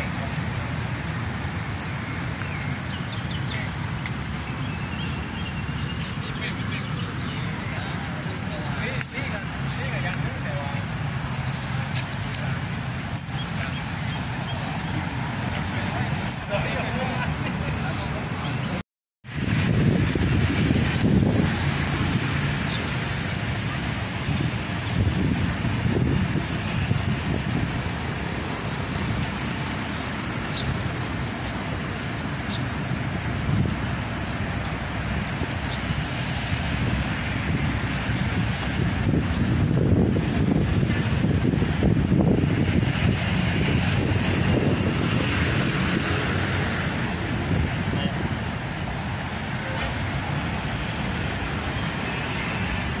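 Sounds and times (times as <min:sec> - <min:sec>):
traffic noise: 0:00.0 - 0:53.0.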